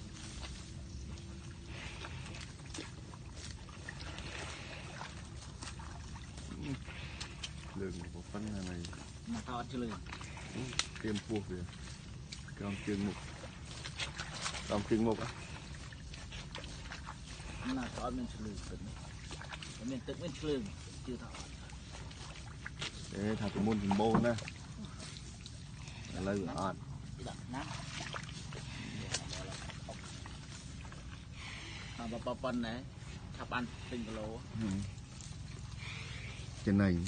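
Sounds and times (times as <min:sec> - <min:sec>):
buffalo tearing and chewing grass: 0:00.0 - 0:37.0
low steady rumble: 0:00.0 - 0:37.0.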